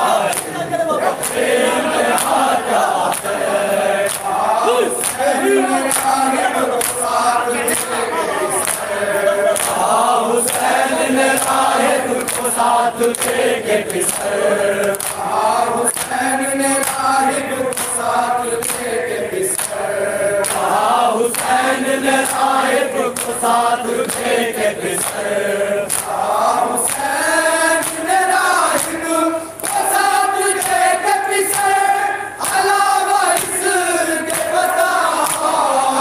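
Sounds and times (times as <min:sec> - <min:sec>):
men chanting in unison: 0:00.0 - 0:36.0.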